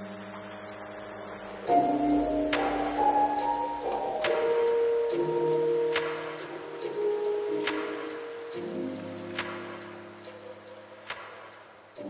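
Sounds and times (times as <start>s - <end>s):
lo-fi piano music: 0.0s - 12.0s
rain hiss: 0.0s - 12.0s.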